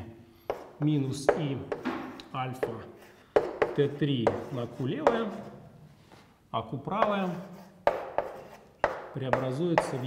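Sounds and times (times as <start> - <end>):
chalk tapping on blackboard: 0.4 - 5.6, 6.9 - 10.0.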